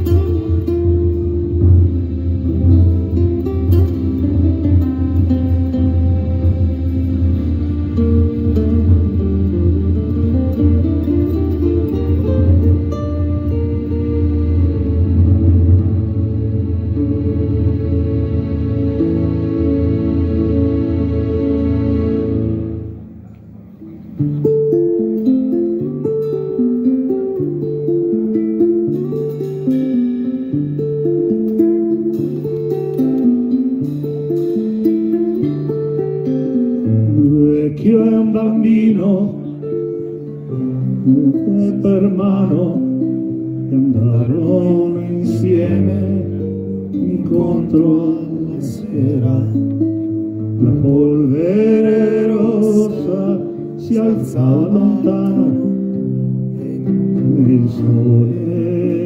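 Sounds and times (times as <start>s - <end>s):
drums: 0.0s - 21.6s
electric bass: 0.0s - 23.3s
acoustic guitar: 0.0s - 59.0s.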